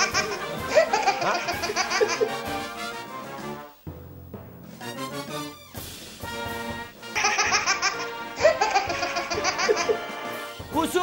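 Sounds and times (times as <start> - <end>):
person laughing hard: 0.0 - 2.5, 7.2 - 10.1
music: 0.0 - 11.0.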